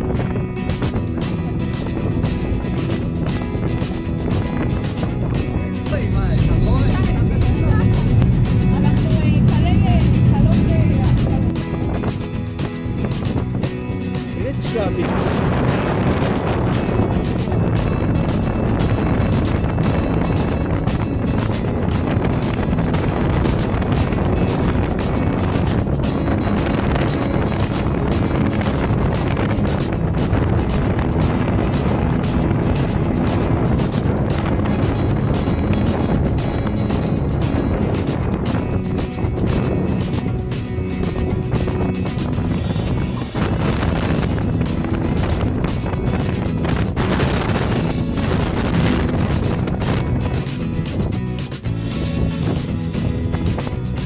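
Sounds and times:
ferry engine droning: 0.0 - 54.0
music playing: 0.0 - 54.0.

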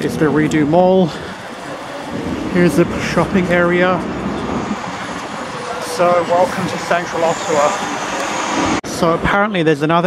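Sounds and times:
street traffic: 0.0 - 9.4.

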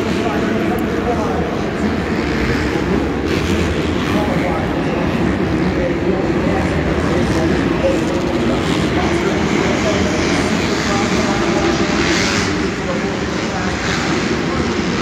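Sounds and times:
motorbike engines revving: 0.0 - 15.0
murmur of spectators' voices: 0.0 - 15.0.

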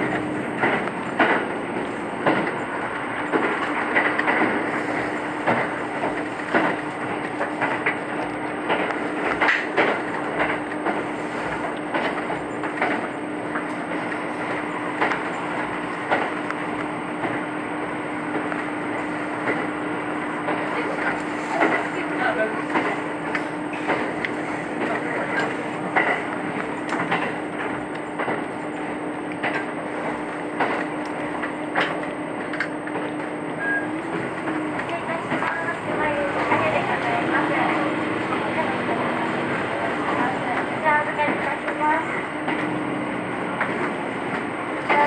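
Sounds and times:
railcar running hum: 0.0 - 45.0
wheels clicking over rails: 0.0 - 45.0.

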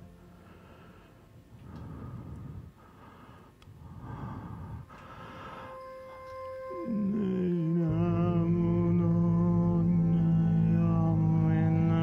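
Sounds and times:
faint musical drone: 0.0 - 12.0
man breathing heavily: 0.2 - 5.8.

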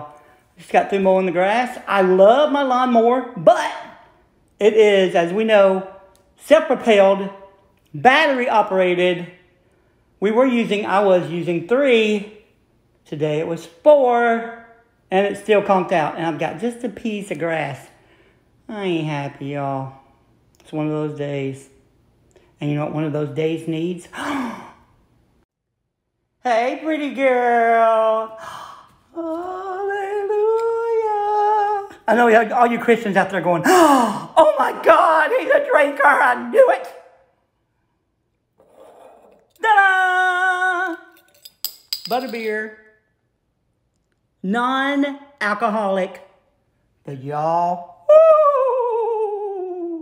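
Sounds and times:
man gasping: 24.1 - 24.9.

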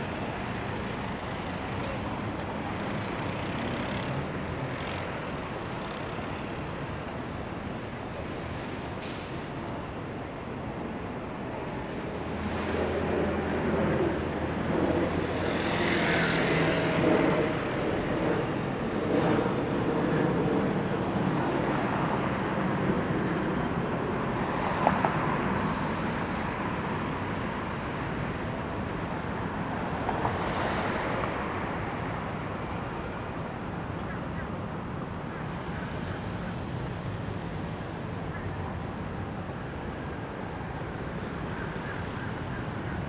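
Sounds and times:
vehicle passing by: 14.2 - 17.8.

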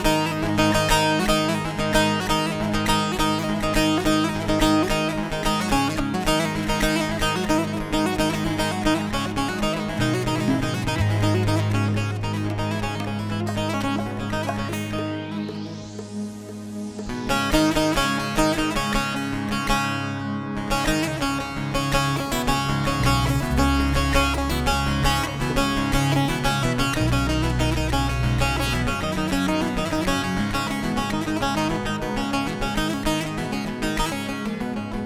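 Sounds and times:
plucked long-necked lute: 0.0 - 16.2, 17.5 - 35.0
keyboard low bass notes: 9.6 - 17.1, 22.8 - 30.3.

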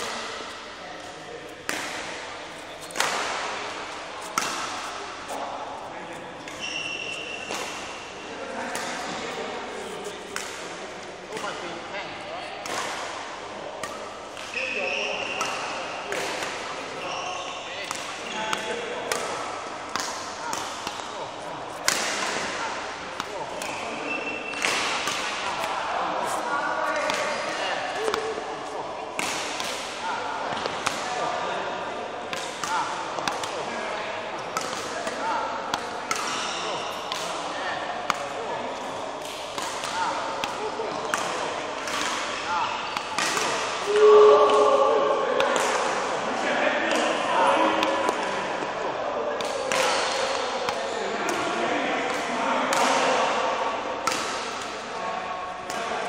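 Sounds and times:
rackets hitting shuttlecock: 0.0 - 5.4, 6.4 - 9.2, 10.3 - 11.7, 12.6 - 44.8, 45.4 - 46.2, 46.9 - 48.8, 49.4 - 56.0.

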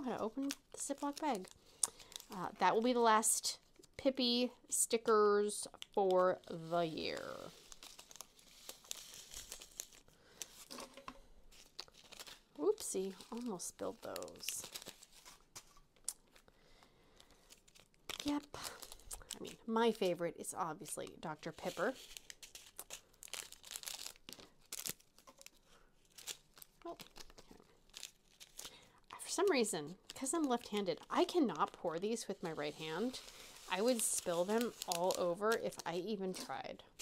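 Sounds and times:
plastic bag crinkling: 0.0 - 3.9, 5.6 - 37.0.

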